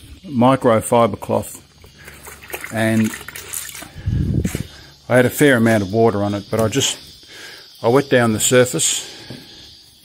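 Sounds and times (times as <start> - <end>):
water sloshing in a bucket: 1.6 - 4.1.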